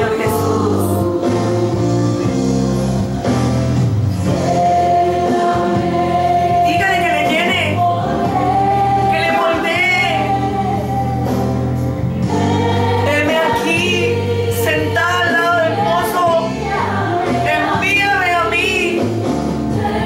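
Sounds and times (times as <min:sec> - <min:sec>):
person singing with vibrato: 0:00.0 - 0:02.9, 0:04.3 - 0:11.5, 0:12.2 - 0:19.2
keyboard chords: 0:00.0 - 0:20.0
steady bass: 0:00.0 - 0:20.0.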